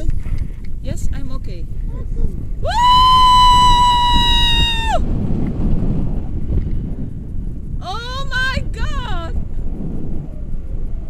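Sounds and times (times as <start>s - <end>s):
wind buffeting microphone: 0.0s - 11.0s
woman screaming with excitement: 2.6s - 5.0s.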